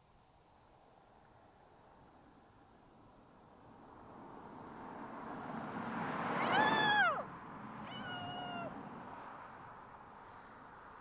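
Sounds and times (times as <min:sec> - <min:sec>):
car driving past: 0:03.7 - 0:11.0.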